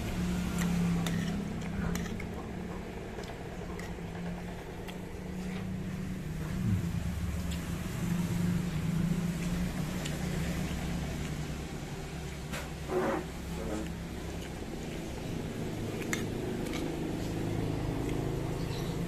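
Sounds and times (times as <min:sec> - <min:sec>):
traffic engine hum: 0:00.0 - 0:19.0
heavy low rumble: 0:06.0 - 0:09.7.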